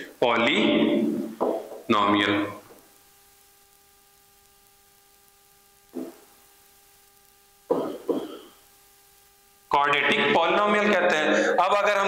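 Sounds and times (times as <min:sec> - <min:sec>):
man clearing his throat: 0:07.7 - 0:08.6.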